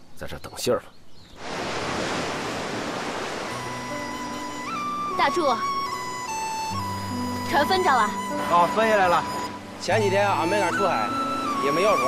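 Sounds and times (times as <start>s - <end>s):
waves breaking on beach: 1.4s - 4.3s
soft sustained music notes: 3.5s - 12.0s.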